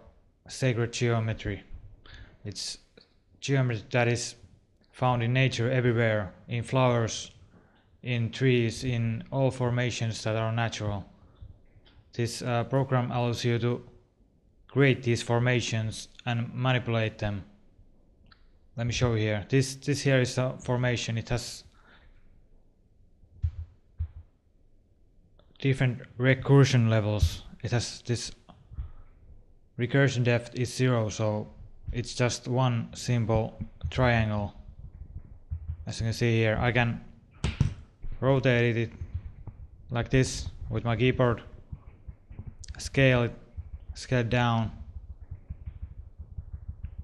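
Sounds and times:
faint low hum: 0:00.0 - 0:47.0
short low thumps: 0:23.4 - 0:24.4, 0:28.5 - 0:29.5, 0:31.4 - 0:47.0.

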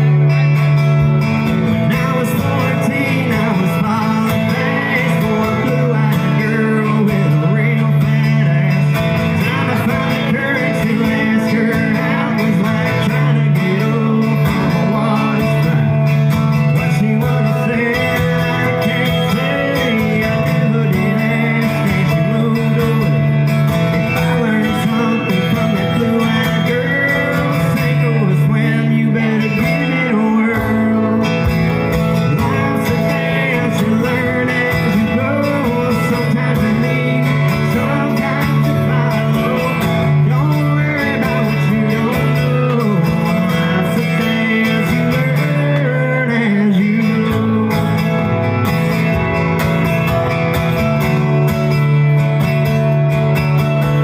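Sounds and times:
guitars playing: 0:00.0 - 0:54.0
man singing into microphone: 0:01.7 - 0:48.6.

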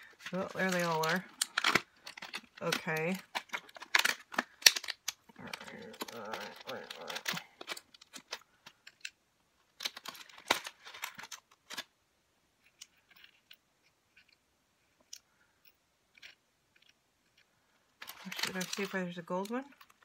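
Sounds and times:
plastic packet crinkling: 0:00.0 - 0:08.5, 0:09.8 - 0:11.9, 0:18.0 - 0:20.0.

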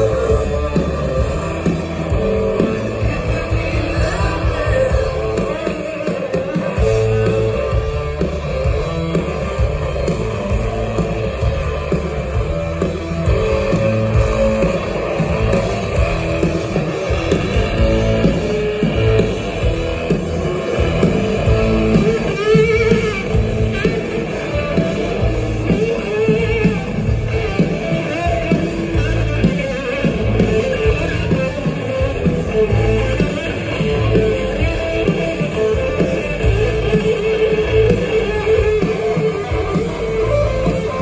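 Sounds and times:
rock band playing live: 0:00.0 - 0:41.0.

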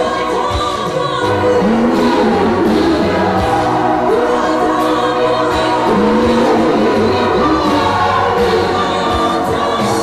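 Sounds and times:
woman singing into microphone: 0:00.0 - 0:10.0
choir singing: 0:01.0 - 0:10.0.

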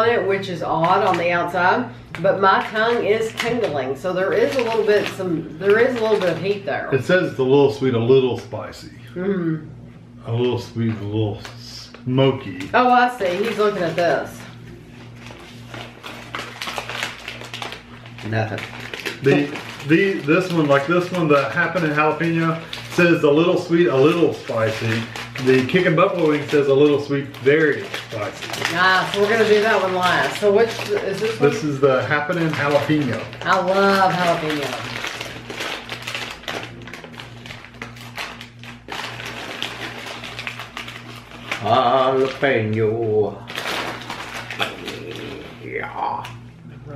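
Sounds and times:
snack bags crinkling: 0:00.0 - 0:07.4, 0:10.7 - 0:46.4
low steady hum: 0:00.0 - 0:46.9.

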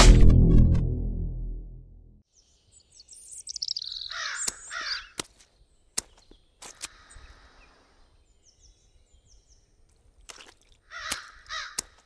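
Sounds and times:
birds chirping: 0:02.3 - 0:09.9.

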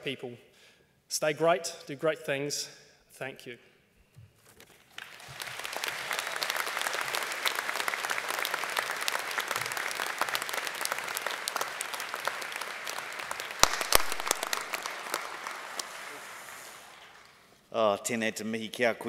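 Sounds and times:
audience applauding: 0:04.8 - 0:17.6
sharp loud claps: 0:04.9 - 0:17.5.

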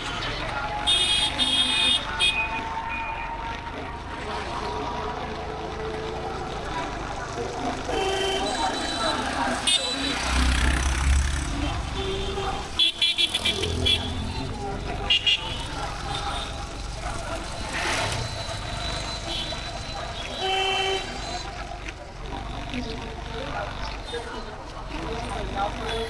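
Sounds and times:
rumble of engines and road noise: 0:00.0 - 0:26.0
vehicle horns beeping: 0:00.8 - 0:03.2, 0:07.8 - 0:10.5, 0:11.7 - 0:16.7, 0:17.8 - 0:21.6.

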